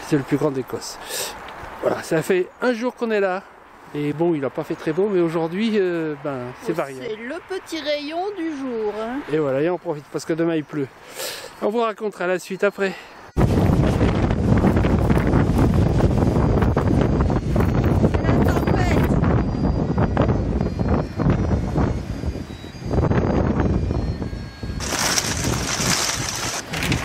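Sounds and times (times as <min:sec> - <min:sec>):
gusty wind buffeting microphone: 0:13.2 - 0:27.0
heavy rain on windscreen: 0:24.8 - 0:27.0.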